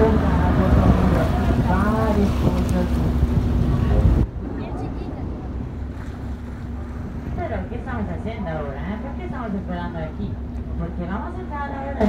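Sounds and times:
boat engine idling: 0.0s - 12.0s
sea washing around hull: 0.0s - 12.0s.

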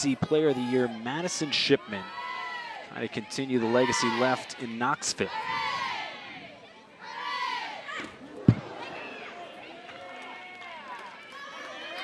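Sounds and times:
crowd chatter and calls: 0.0s - 12.0s
softball striking batter: 8.0s - 9.4s.

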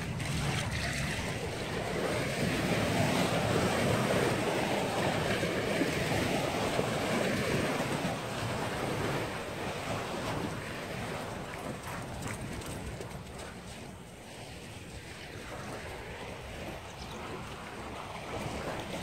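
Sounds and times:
small waves washing on shore: 0.0s - 19.0s
wind buffeting microphone: 0.0s - 19.0s.

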